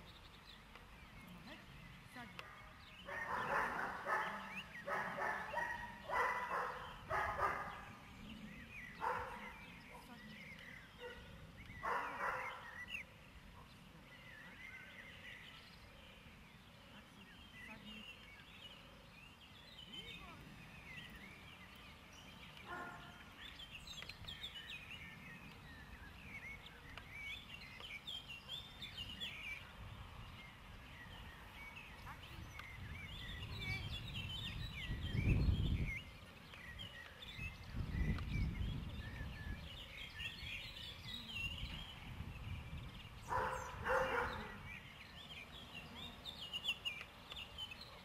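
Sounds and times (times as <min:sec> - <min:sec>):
small birds chirping: 0:00.0 - 0:48.0
wind rumble on microphone: 0:28.7 - 0:46.6.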